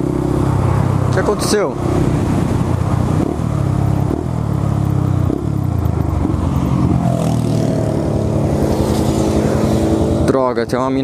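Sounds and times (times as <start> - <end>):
motorcycle engine: 0.0 - 11.0.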